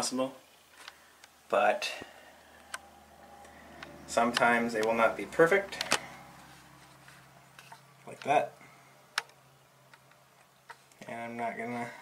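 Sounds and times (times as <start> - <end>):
steady low hum: 1.8 - 10.0.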